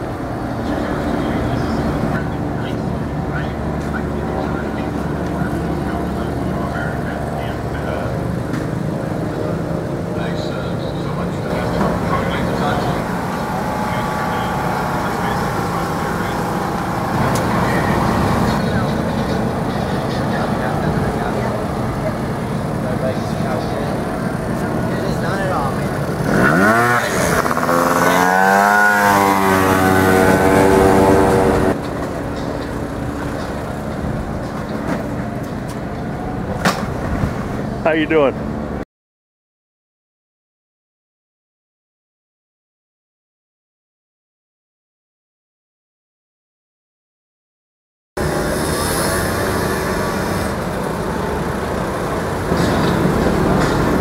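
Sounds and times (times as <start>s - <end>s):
motorcycle engines running: 0.0s - 38.8s, 48.2s - 54.0s
motorcycle revving high: 11.5s - 31.8s, 48.2s - 54.0s.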